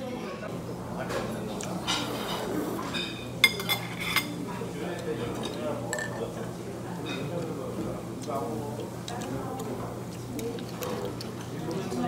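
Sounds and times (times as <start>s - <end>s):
ceramic dishes clinking: 1.8s - 4.4s, 5.4s - 6.2s.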